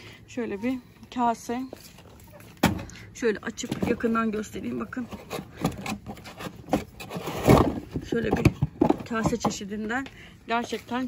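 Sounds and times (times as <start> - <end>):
cardboard scraping rustle: 3.7 - 8.3.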